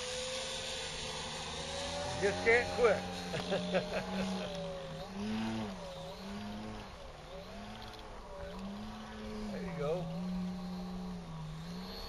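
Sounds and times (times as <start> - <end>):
model airplane engine: 0.0 - 12.0.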